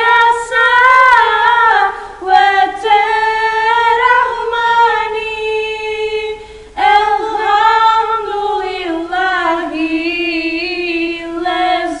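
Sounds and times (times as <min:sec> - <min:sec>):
girls singing unaccompanied: 0:00.0 - 0:12.0.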